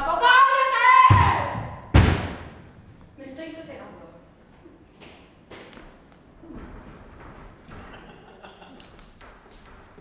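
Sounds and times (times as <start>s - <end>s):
heavy thuds on a stage: 1.1s - 2.9s.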